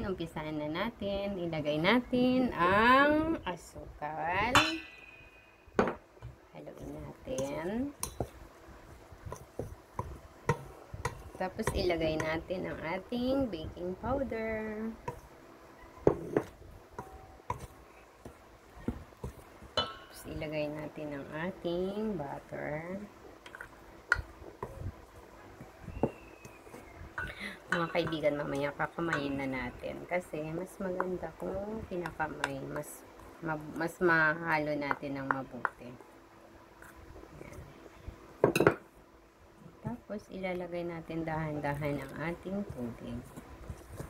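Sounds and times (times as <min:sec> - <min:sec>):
spatula clinking on metal bowl: 0:04.5 - 0:05.3, 0:19.8 - 0:20.3
spatula stirring flour: 0:06.7 - 0:15.4, 0:16.0 - 0:36.1, 0:36.7 - 0:37.8, 0:39.8 - 0:44.0.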